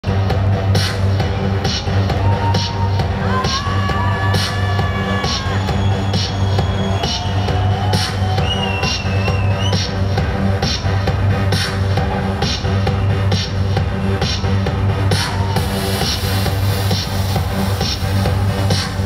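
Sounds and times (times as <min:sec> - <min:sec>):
electronic dance music: 0:00.0 - 0:19.0.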